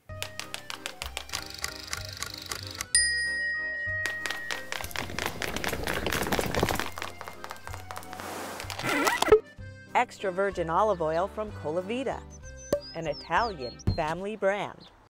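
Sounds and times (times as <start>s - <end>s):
bright chime: 3.0s - 4.7s
background music with steady beat: 12.2s - 14.1s.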